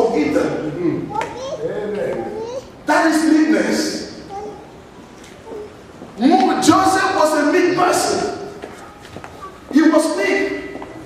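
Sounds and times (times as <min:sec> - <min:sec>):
high-pitched voice talking: 0:01.1 - 0:02.7, 0:04.3 - 0:04.7.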